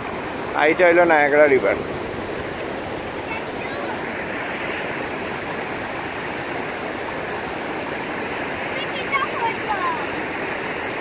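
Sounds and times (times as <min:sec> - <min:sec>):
river current rushing: 0:00.0 - 0:11.0.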